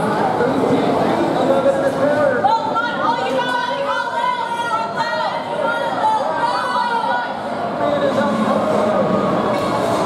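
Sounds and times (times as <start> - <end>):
crowd chatter echoing indoors: 0.0 - 10.0.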